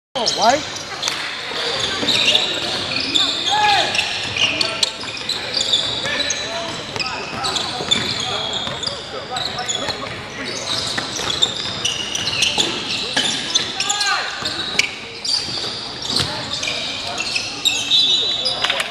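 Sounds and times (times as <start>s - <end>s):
players calling out: 0.2s - 18.9s
sneakers squeaking: 0.2s - 18.9s
basketball bouncing: 6.7s - 8.8s, 10.9s - 13.3s.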